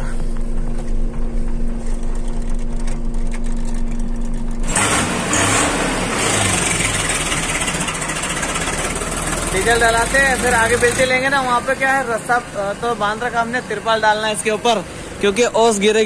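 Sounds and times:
diesel engine idling: 0:00.0 - 0:16.0
rough hissing engine running: 0:00.0 - 0:16.0.

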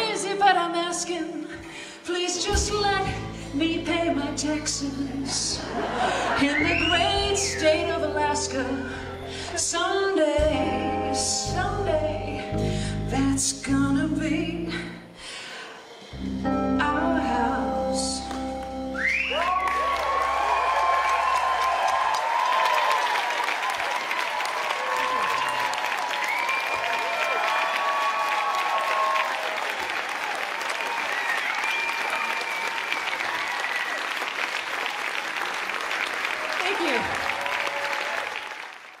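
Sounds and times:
audience cheering and whooping: 0:18.9 - 0:39.0
audience applauding: 0:19.0 - 0:39.0.

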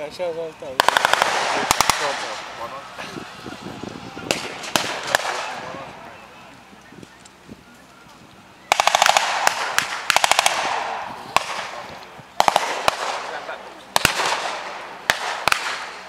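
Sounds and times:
single gunshots: 0:00.8 - 0:02.5, 0:04.3 - 0:05.7, 0:08.7 - 0:11.8, 0:12.4 - 0:16.0.

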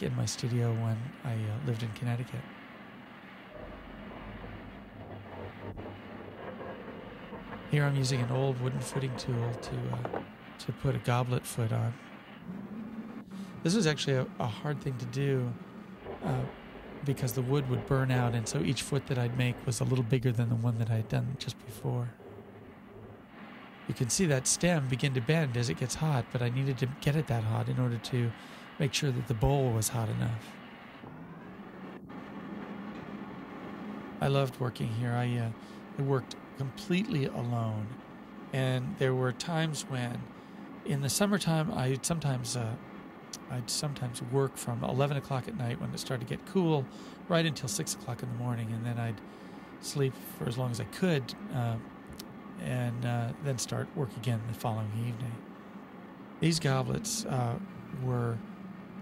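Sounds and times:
burner roaring: 0:00.0 - 0:45.9
low hum: 0:00.0 - 0:59.0
low rumble with hiss: 0:00.0 - 0:59.0.

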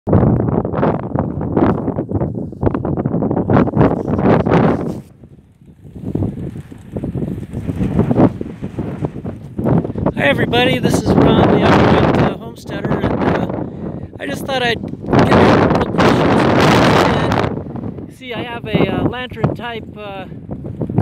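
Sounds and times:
wind buffeting microphone: 0:00.1 - 0:21.0.

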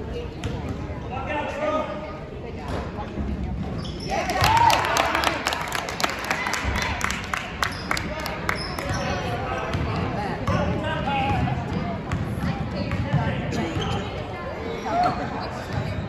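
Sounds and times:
voices of spectators and players: 0:00.0 - 0:16.0.

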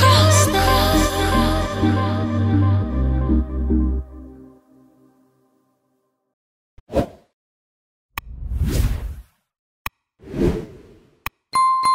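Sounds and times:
whoosh: 0:08.2 - 0:09.3.

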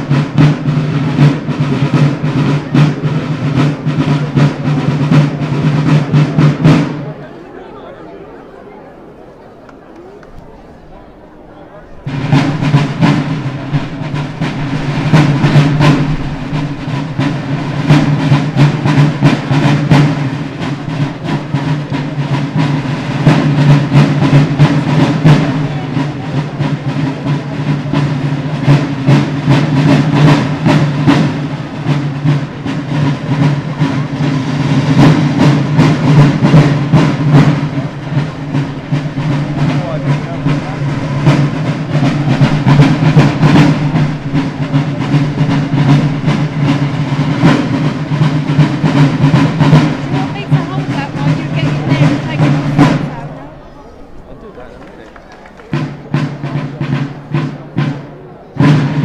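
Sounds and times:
snare drums playing fast: 0:00.0 - 0:07.2, 0:11.9 - 0:59.0.

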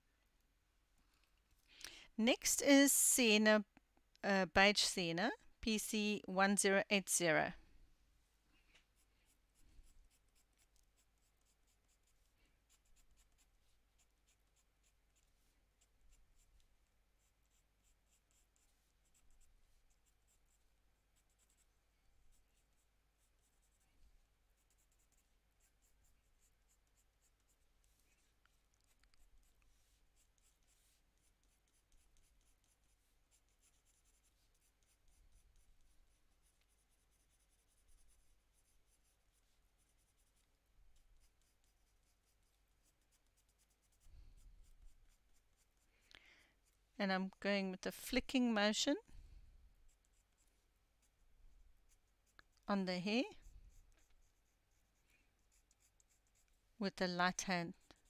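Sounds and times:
coloured pencil scratching on paper: 0:08.8 - 0:45.9, 0:46.6 - 0:47.5, 0:49.8 - 0:58.0.

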